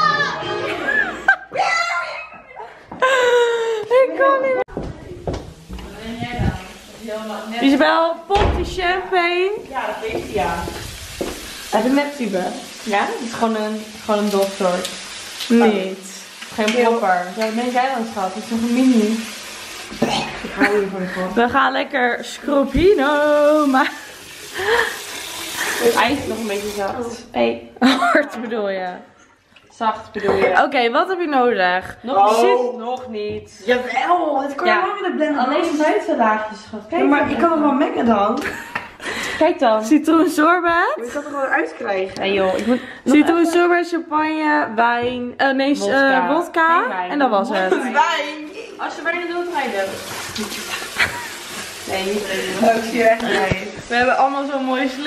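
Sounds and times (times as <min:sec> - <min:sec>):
water splashing: 0:05.9 - 0:27.2, 0:48.9 - 0:55.0
tap running into sink: 0:10.0 - 0:11.6.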